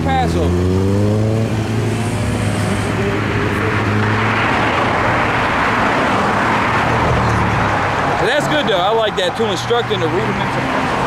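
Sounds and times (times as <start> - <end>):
vehicle engine humming: 0.0 - 11.0
car passing by: 0.2 - 11.0.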